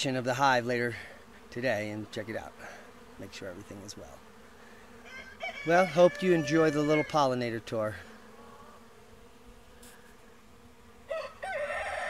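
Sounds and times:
honeybees buzzing: 0.0 - 12.0
rooster crowing: 5.0 - 7.4, 11.1 - 12.0.

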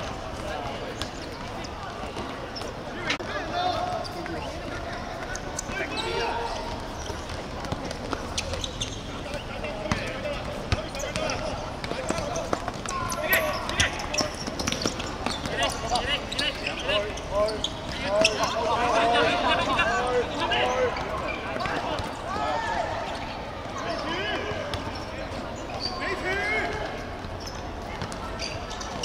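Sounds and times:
players shouting: 9.2 - 27.2.

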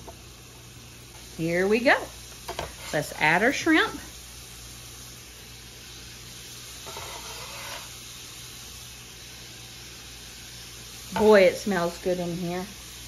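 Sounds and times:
onions sizzling in a skillet: 0.0 - 13.0
shrimp scraped into a pan: 2.5 - 3.2, 6.8 - 8.0.

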